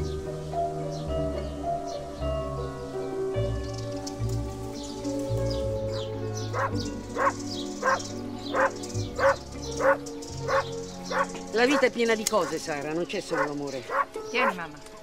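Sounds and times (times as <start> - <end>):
soft music with held notes: 0.0 - 15.0
dog barking: 6.5 - 11.4, 13.3 - 14.1.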